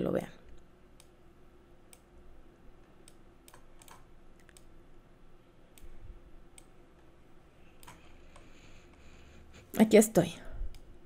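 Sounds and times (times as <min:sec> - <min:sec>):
room hum: 0:00.0 - 0:11.0
computer mouse clicks: 0:00.5 - 0:01.2, 0:01.9 - 0:02.1, 0:02.8 - 0:04.8, 0:05.7 - 0:06.8, 0:07.7 - 0:09.1, 0:10.7 - 0:11.0.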